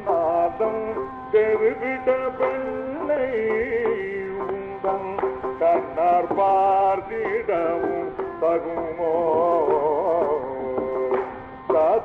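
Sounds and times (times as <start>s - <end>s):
man singing classical vocals: 0.0s - 12.0s
musical accompaniment: 0.0s - 12.0s.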